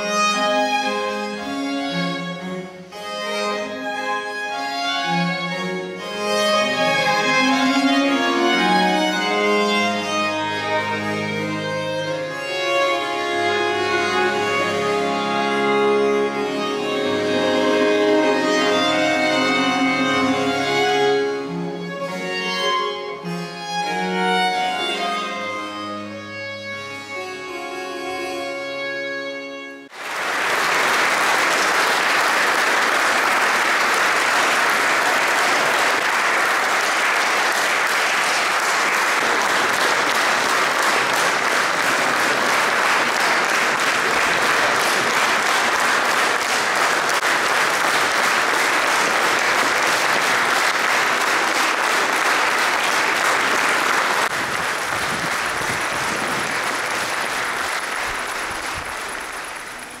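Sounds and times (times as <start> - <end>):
audience applauding: 5.6 - 11.6, 12.2 - 22.5, 29.9 - 60.0.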